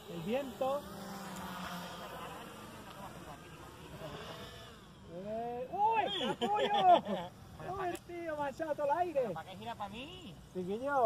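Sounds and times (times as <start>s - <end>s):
model aircraft motors buzzing: 0.0s - 11.0s.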